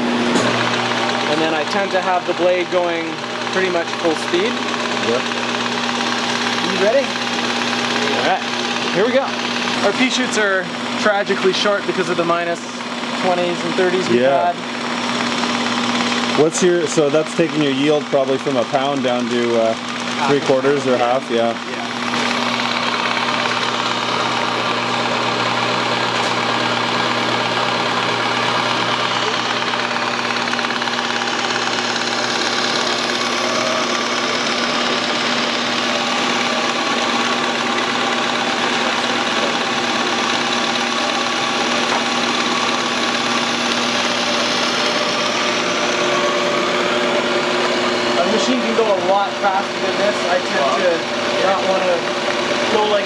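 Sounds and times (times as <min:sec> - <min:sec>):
machine humming: 0:00.0 - 0:53.0.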